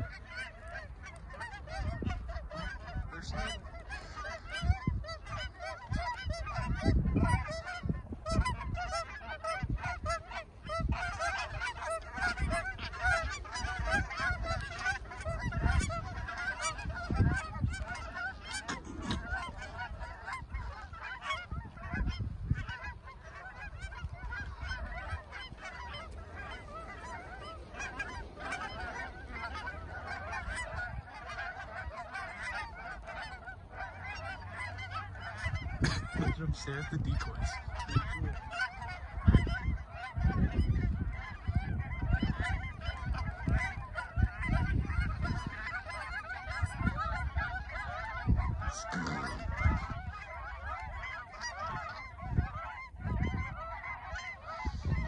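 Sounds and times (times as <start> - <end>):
geese honking: 0.0 - 55.0
wind buffeting microphone: 0.0 - 55.0.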